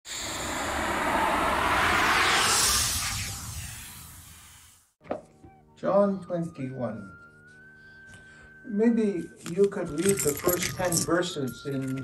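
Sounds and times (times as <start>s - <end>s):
whoosh rushing noise: 0.1s - 4.8s.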